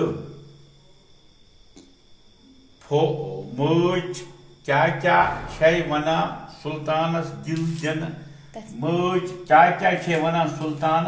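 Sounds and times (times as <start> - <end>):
faint steady high whine: 0.0 - 11.0.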